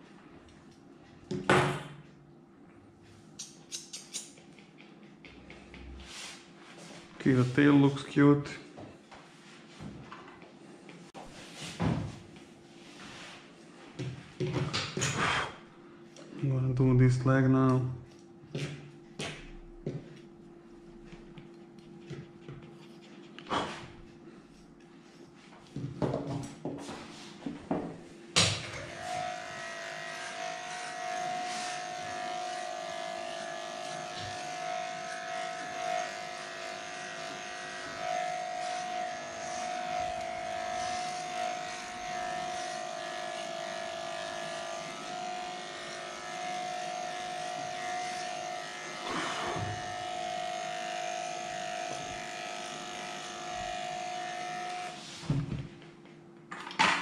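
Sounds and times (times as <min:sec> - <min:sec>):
electric clipper whining: 0:28.4 - 0:55.1.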